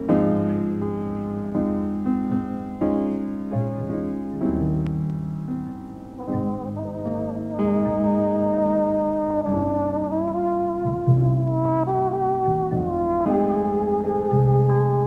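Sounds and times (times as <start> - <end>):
big band jazz: 6.2 - 15.0
trombone playing slow melody: 6.2 - 15.0.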